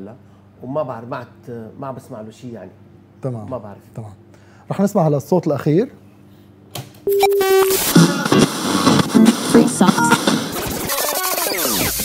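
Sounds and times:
recorded song: 7.3 - 12.0.

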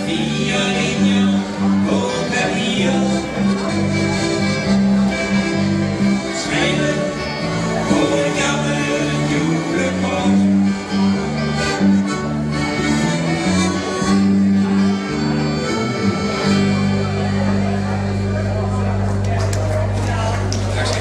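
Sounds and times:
live dance band playing: 0.0 - 19.2.

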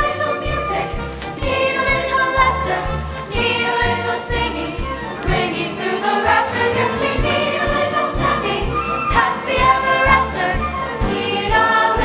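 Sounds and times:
instrumental accompaniment: 0.0 - 12.0
mixed choir singing in harmony: 0.0 - 12.0
rhythmic bass line: 0.0 - 12.0.

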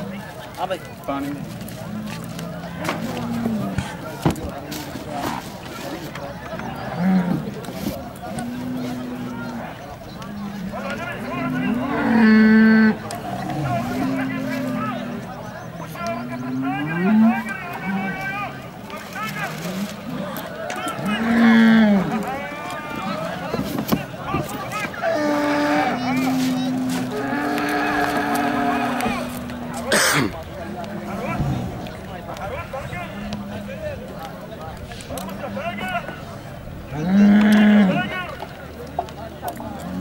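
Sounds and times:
voices: 0.0 - 40.0
faint low moos: 6.6 - 18.6, 24.5 - 38.2, 39.6 - 40.0
bull bellowing: 8.3 - 18.4, 20.9 - 22.6, 24.9 - 33.6, 36.9 - 38.2
sudden loud noise: 31.1 - 32.3.

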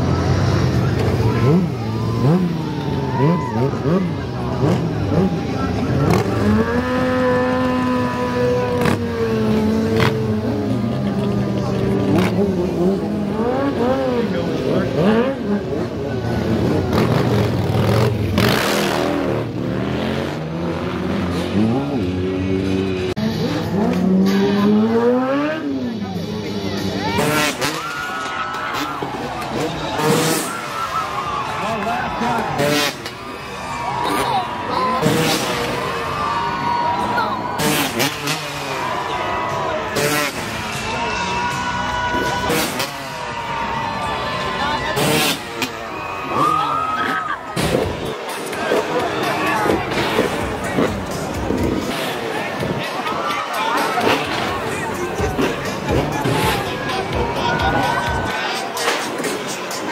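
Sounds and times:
motorcycle engine revving: 0.0 - 28.1, 28.7 - 30.9, 32.1 - 36.2, 37.0 - 43.5, 44.4 - 59.9
crowd talking: 0.0 - 59.9.

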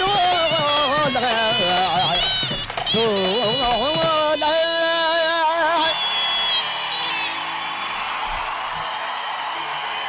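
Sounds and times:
audience applauding and cheering: 0.0 - 10.0.

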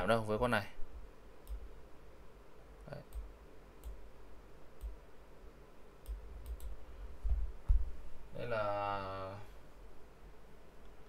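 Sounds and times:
computer mouse clicking: 1.4 - 1.7, 3.1 - 4.0, 6.0 - 6.8.

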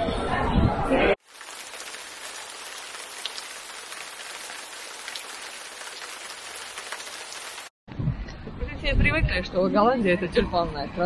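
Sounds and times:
steady rain falling: 1.2 - 7.7.

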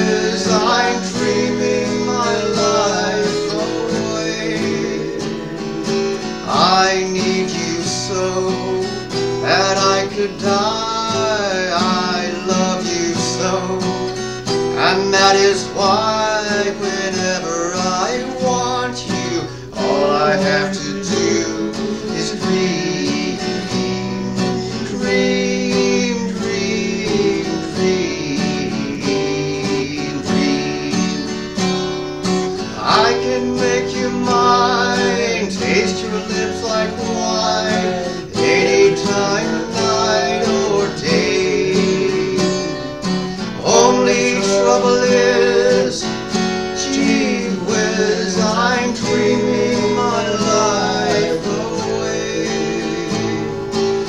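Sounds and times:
man singing a slow ballad: 0.0 - 31.8, 32.6 - 54.0
acoustic guitar strumming: 0.0 - 54.0.

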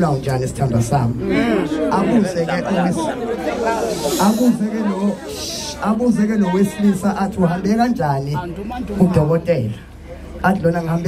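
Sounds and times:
man speaking into microphone: 0.0 - 11.0.

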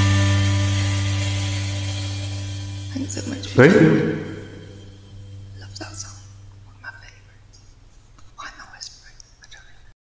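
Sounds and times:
low hum: 2.6 - 5.6
person whispering: 3.6 - 4.4, 8.4 - 9.9.

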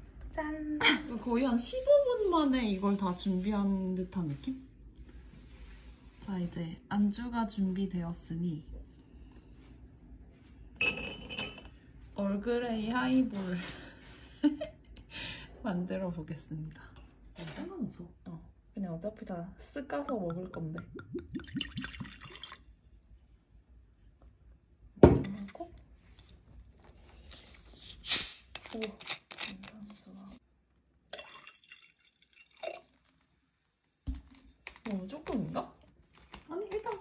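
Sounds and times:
glassware clinking: 10.8 - 11.8
short loud hiss: 27.7 - 28.5
handling noises at a table: 28.4 - 30.4.

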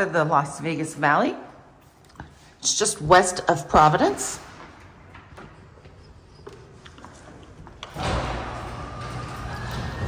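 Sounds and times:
garage door opener motor hum: 7.8 - 10.0.

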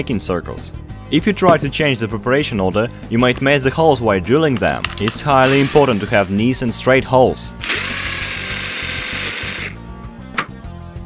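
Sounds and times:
electric drill boring metal: 5.1 - 6.6, 7.6 - 9.8.

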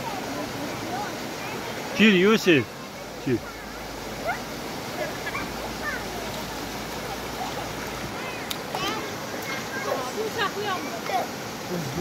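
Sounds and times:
river flowing: 0.0 - 12.0.

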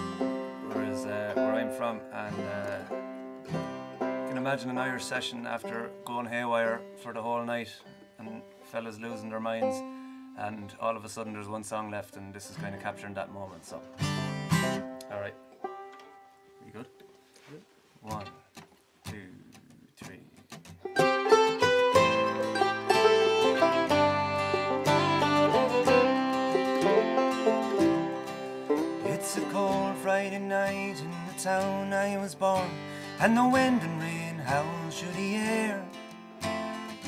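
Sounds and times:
acoustic string band playing: 0.0 - 5.4, 13.9 - 16.4, 20.8 - 35.0.

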